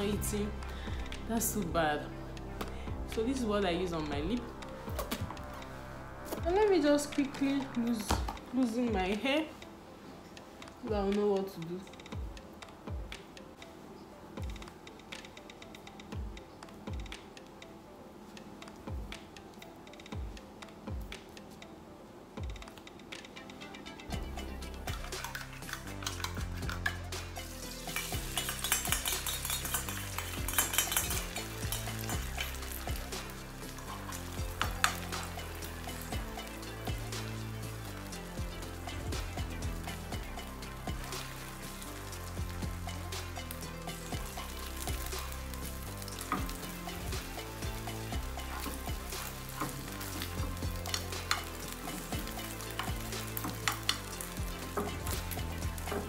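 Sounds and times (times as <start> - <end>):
background music: 0.0 - 56.0
egg sizzling in frying pan: 24.3 - 56.0
metal spoon scraping pan: 27.9 - 32.6.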